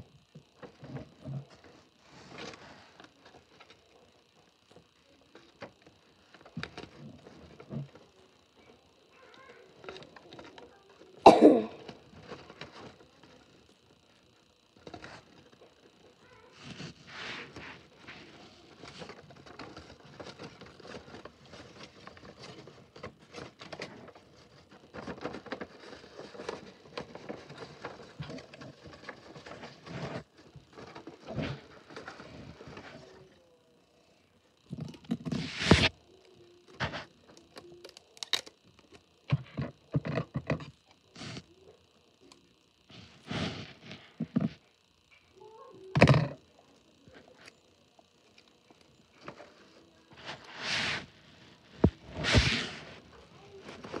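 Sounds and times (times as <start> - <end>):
paper crinkling and rustling: 16.6 - 33.2
paper crackles and taps: 51.7 - 52.8.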